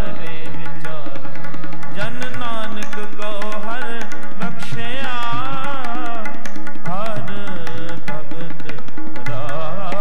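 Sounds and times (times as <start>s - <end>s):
person singing: 0.0s - 10.0s
tabla strokes: 0.0s - 10.0s.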